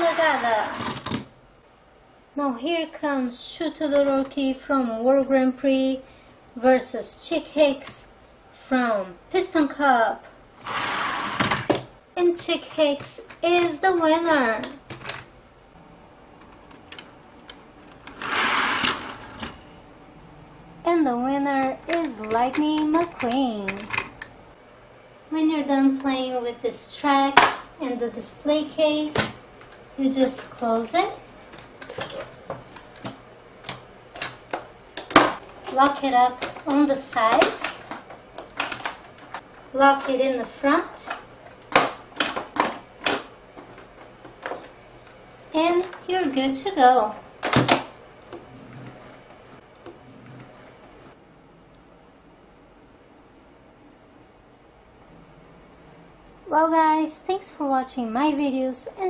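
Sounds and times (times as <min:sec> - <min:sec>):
toy cars rolling on plastic track: 0:00.0 - 0:01.1.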